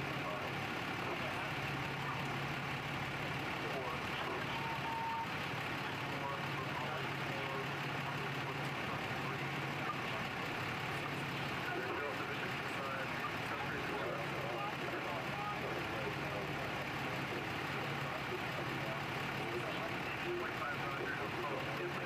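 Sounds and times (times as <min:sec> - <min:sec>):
people talking indistinctly: 0:00.0 - 0:22.0
vehicle engines idling: 0:00.0 - 0:22.0.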